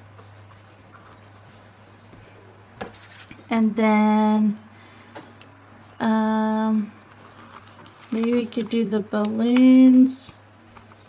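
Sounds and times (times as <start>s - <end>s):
fingertips rubbing on paper: 0.0s - 2.2s.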